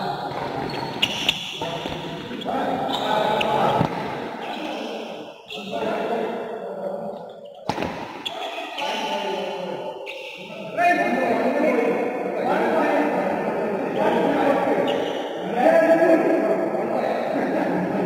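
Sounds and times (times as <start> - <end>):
voices calling out in hall: 0.0 - 18.0.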